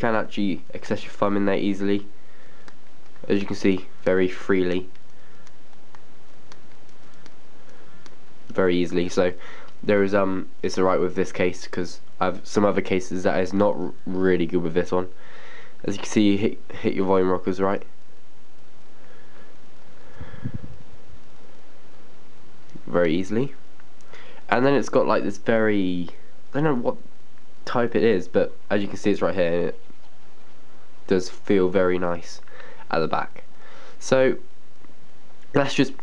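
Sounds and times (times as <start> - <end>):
steady hiss: 0.0 - 36.0
faint ticks: 4.9 - 8.6
soft low thuds: 20.2 - 21.0.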